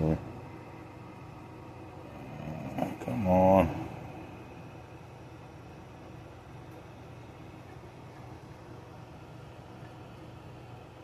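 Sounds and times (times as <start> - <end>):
man speaking: 2.4 - 4.0.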